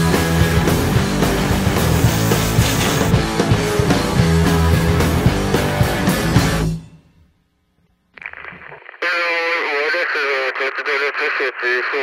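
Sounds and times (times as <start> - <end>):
crackling hiss: 8.2 - 9.8
person talking through radio speaker: 8.2 - 12.0.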